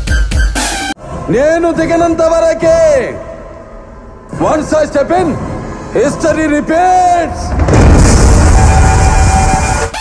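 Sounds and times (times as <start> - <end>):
action film music: 0.0 - 10.0
deep rumble: 1.0 - 9.9.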